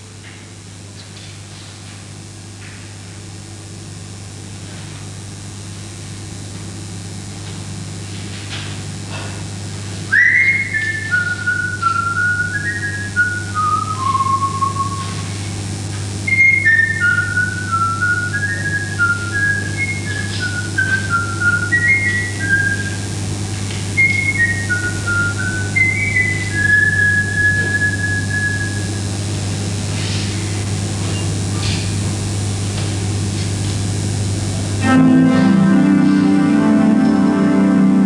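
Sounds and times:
person whistling a tune: 10.1 - 15.3, 16.3 - 23.0, 24.0 - 28.9.

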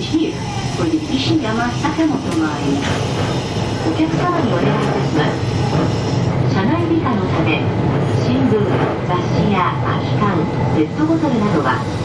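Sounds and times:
recorded onboard announcement: 0.0 - 3.0, 3.8 - 12.0
electric train running rumble: 0.0 - 12.0.

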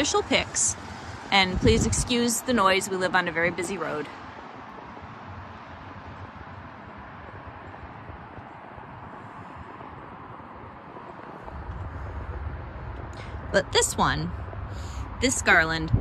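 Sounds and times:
traffic hiss of passing vehicles: 0.0 - 16.0
low rumble: 5.0 - 16.0.

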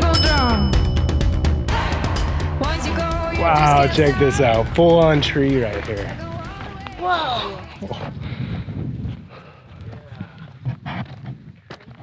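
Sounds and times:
low wind rumble: 1.5 - 11.6
footsteps on sandy ground: 5.5 - 12.0.

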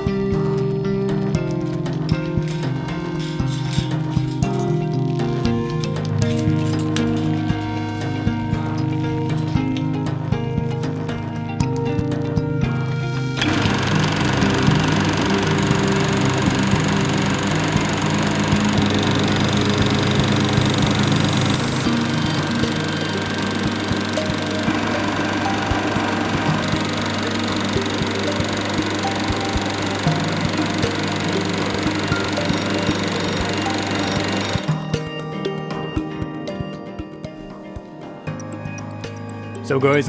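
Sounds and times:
projector motor hum: 13.4 - 34.8
film projector clatter: 13.4 - 35.0.

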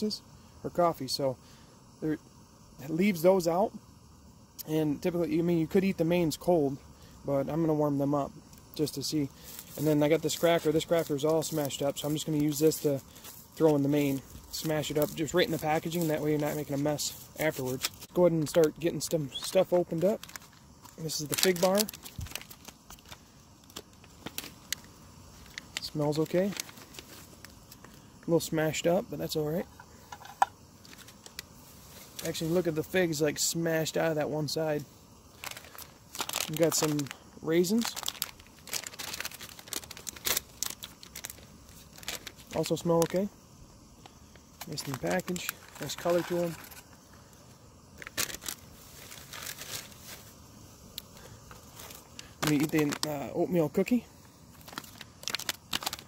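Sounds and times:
foil pouch crinkling: 9.3 - 28.0, 30.2 - 32.7, 35.3 - 43.3, 44.5 - 47.0, 47.9 - 50.3, 51.0 - 56.0.

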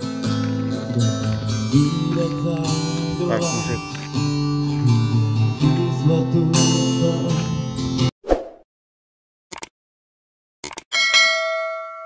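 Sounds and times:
quick clicks: 9.5 - 9.7, 10.6 - 10.9
bright bell ding: 10.9 - 12.0.

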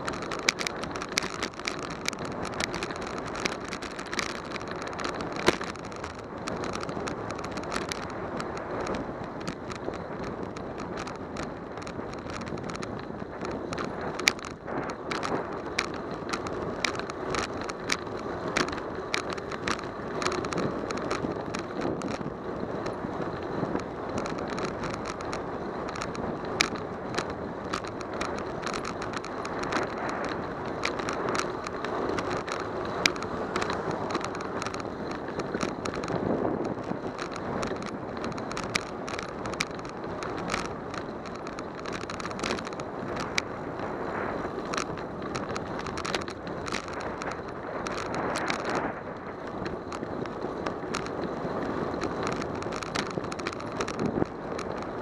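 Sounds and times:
bicycle tyre and wind rumble: 0.0 - 55.0
bike rattling over bumps: 0.0 - 55.0.

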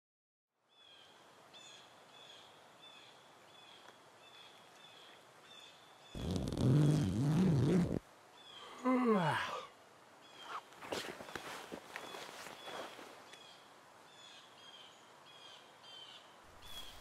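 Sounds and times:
small bird chirping: 3.6 - 8.6
person groaning loudly: 8.7 - 9.7.

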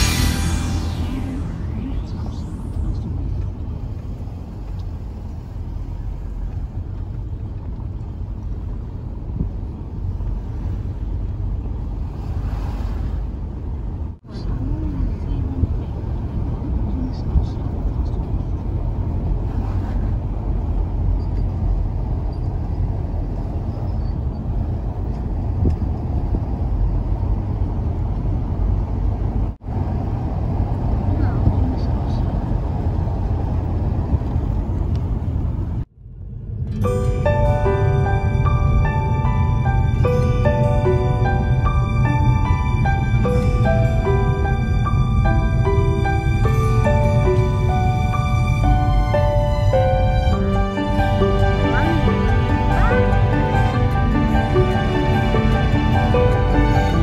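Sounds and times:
car engine rumble: 0.0 - 57.0
tyres on road: 0.0 - 57.0.

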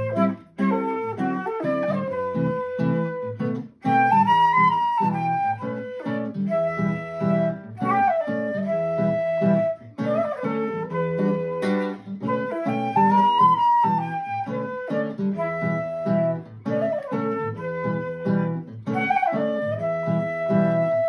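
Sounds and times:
acoustic guitar plucking: 0.0 - 21.0
flute melody: 0.0 - 21.0.

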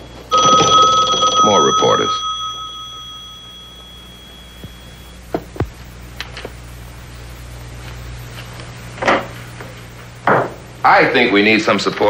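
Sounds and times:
telephone bell ringing: 0.0 - 5.2.

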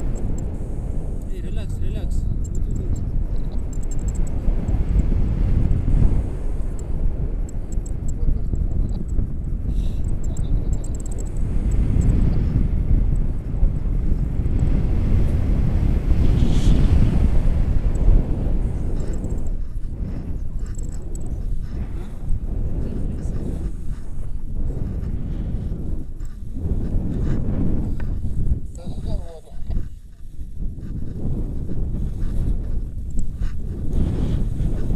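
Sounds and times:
wind buffeting microphone: 0.0 - 34.9.

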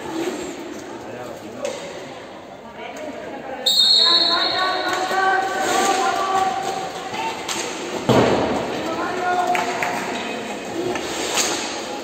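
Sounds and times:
voices calling out in echoing hall: 0.8 - 12.0
referee's whistle blast: 3.7 - 4.8.

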